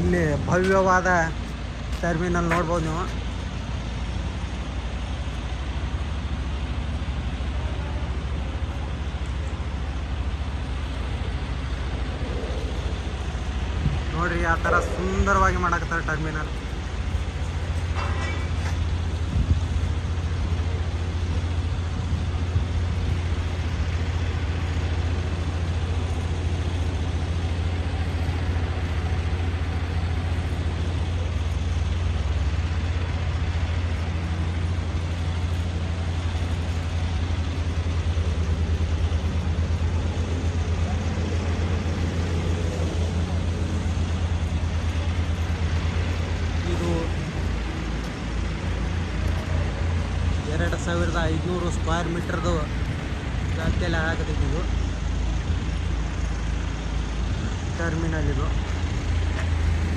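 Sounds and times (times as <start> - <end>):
construction site rumble: 0.0 - 59.9.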